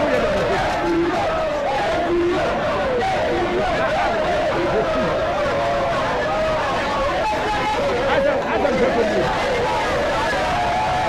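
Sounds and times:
crowd of children shouting: 0.0 - 11.0.

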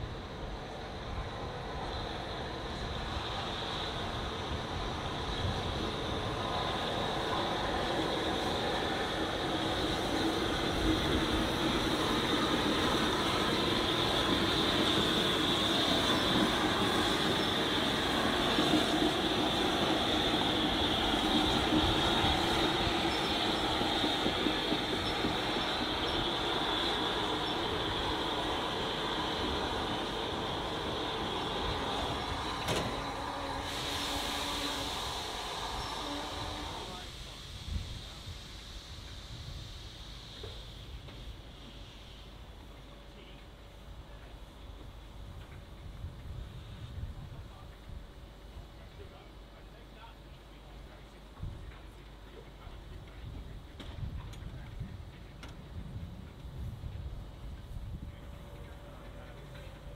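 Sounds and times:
train running gear rumble: 0.0 - 59.9
high-pitched squeal: 5.2 - 37.1.

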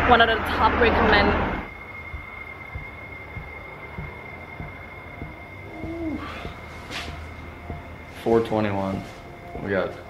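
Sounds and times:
faint high whine: 0.0 - 10.0
low hoot-like sound: 1.6 - 10.0.

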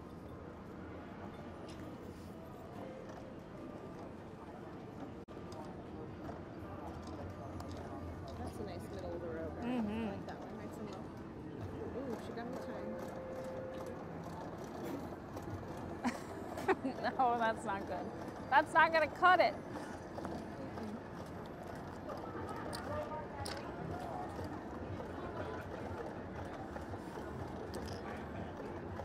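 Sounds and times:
murmur of distant voices: 0.0 - 29.0.

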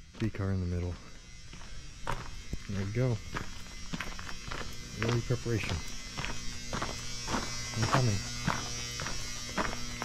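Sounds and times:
low electrical hum: 0.0 - 10.0
man speaking: 0.2 - 1.0, 2.6 - 3.3, 4.9 - 5.9, 7.7 - 8.3.

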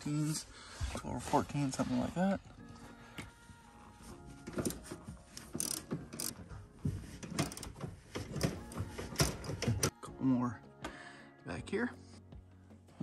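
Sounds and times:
socket ratchet clicking: 5.4 - 6.4, 7.4 - 9.7.

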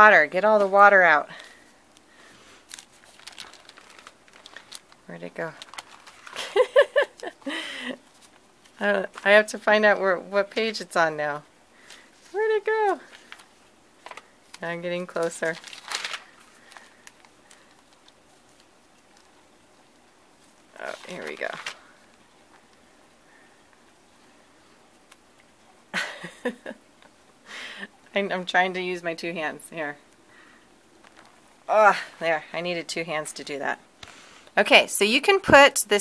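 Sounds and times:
magazine pages rustling: 0.5 - 7.4, 11.8 - 22.9, 30.9 - 31.6.

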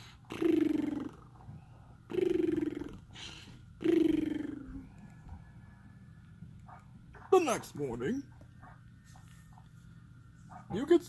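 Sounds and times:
cartoon snoring: 0.0 - 1.3, 2.1 - 4.9
breathy in-breath: 3.1 - 3.6.

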